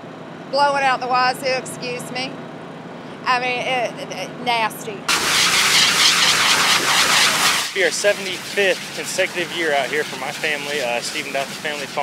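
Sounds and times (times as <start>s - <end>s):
grooming blower air rush: 5.1s - 12.0s.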